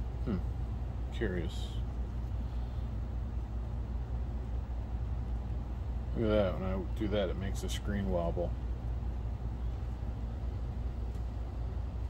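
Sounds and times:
low machine hum with airy hiss: 0.0s - 12.0s.

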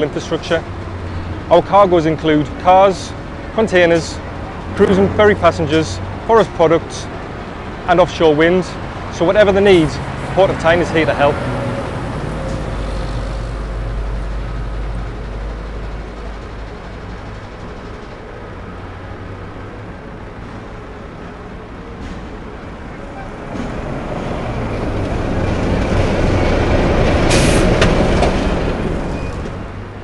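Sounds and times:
lorry engine rumble: 0.0s - 30.0s.

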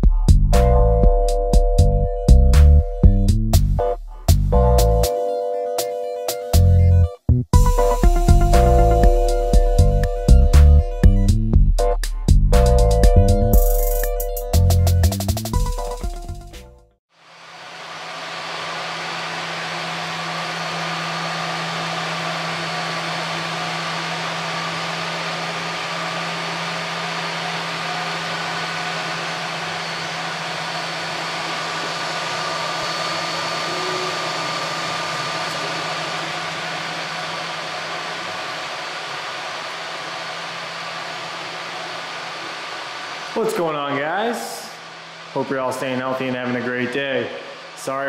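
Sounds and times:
low hum: 6.6s - 11.5s, 17.3s - 48.0s
cooling fans whirring: 17.2s - 48.0s
thin motor whines: 17.2s - 48.0s.

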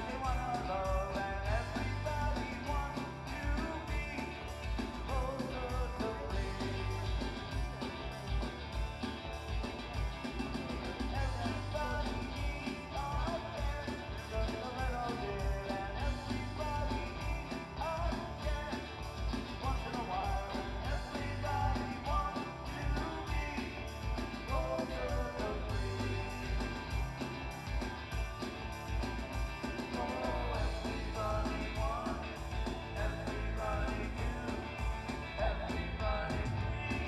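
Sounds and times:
man singing: 0.0s - 7.3s, 11.1s - 26.7s, 29.8s - 37.0s
electric bass: 0.0s - 37.0s
steady drum beat: 0.0s - 37.0s.

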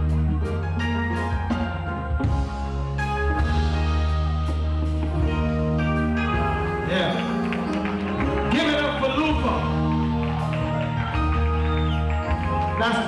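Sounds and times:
reggae music with heavy bass: 0.0s - 13.0s.

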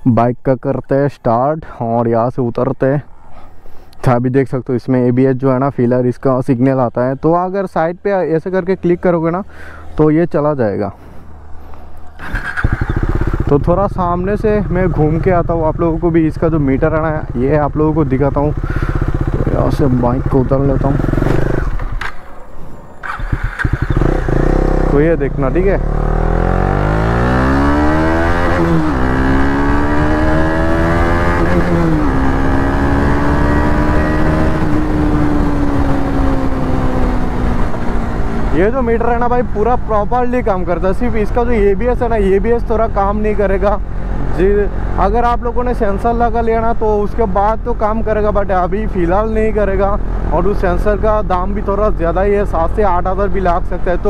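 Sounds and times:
motorcycle engine idling and revving: 11.0s - 54.0s.

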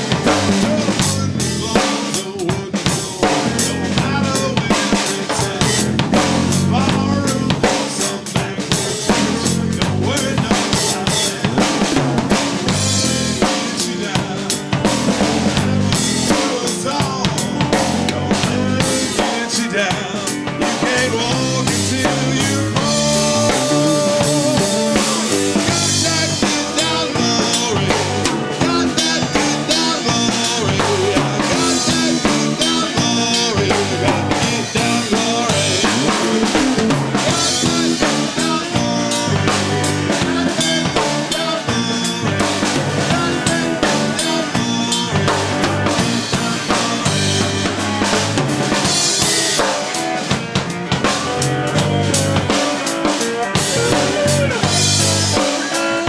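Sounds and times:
drum kit steady beat: 0.0s - 56.0s
electric bass: 0.0s - 56.0s
slide guitar: 0.0s - 56.0s.

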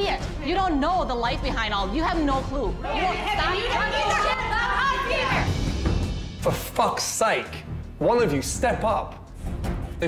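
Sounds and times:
voices arguing: 0.0s - 6.1s.

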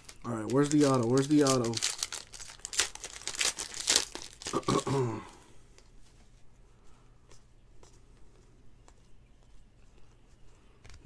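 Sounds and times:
foil wrapper tearing and crinkling: 0.0s - 5.0s.

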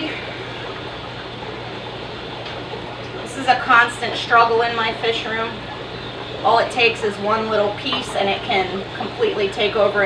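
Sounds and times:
low hum: 0.0s - 10.0s
water trickling through a hose: 0.0s - 10.0s.

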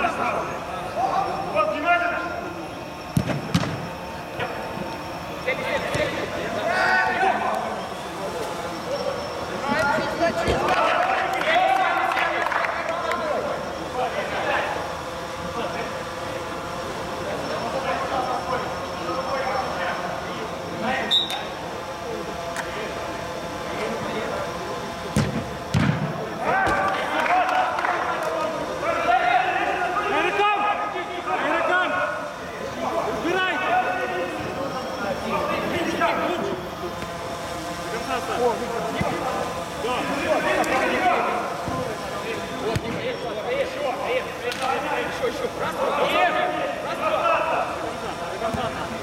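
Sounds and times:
footballers shouting: 0.0s - 22.4s, 24.4s - 49.0s.

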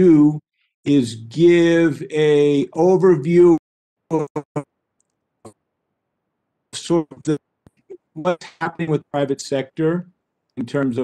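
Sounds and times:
man speaking over video call: 0.0s - 4.8s, 6.7s - 11.0s.

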